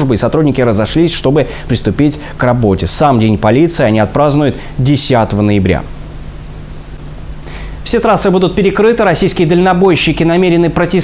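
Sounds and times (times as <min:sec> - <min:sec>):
man speaking: 0:00.0 - 0:05.9, 0:07.8 - 0:11.0
steady background hiss: 0:00.0 - 0:11.0.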